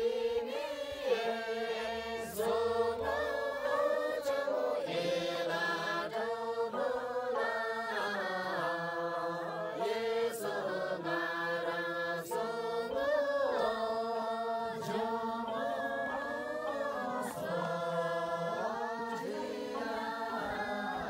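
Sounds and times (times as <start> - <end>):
group singing in unison: 0.0 - 21.0.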